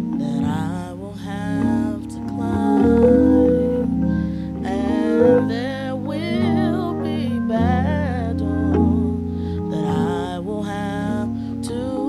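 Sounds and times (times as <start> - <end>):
held organ chords: 0.0 - 11.8
gospel singing with vibrato: 0.0 - 12.0.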